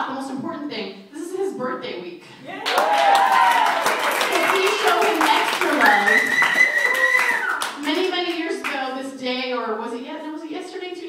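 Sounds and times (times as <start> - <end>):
audience clapping: 2.5 - 8.9.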